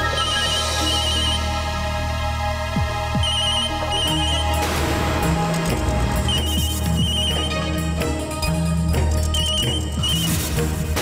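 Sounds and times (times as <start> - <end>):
background music with low notes: 0.0 - 11.0
mobile phone ringing: 0.2 - 1.5, 3.2 - 4.4.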